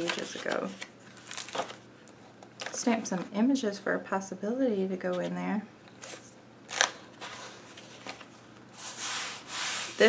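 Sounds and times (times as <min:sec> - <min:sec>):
paper rustling and rubbing: 0:07.2 - 0:10.0.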